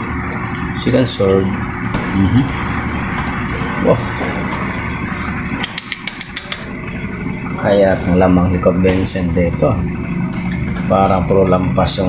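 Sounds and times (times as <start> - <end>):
hall noise: 0.0 - 12.0
table tennis ball bouncing: 5.6 - 6.7.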